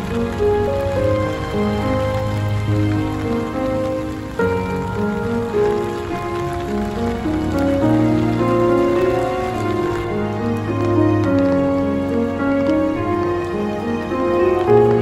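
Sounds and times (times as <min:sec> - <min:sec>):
rain on wet paving: 0:00.0 - 0:15.0
soft instrumental music: 0:00.0 - 0:15.0.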